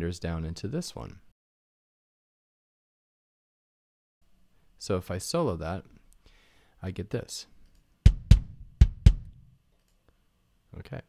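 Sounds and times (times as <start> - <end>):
kick drum beats: 8.0 - 9.4.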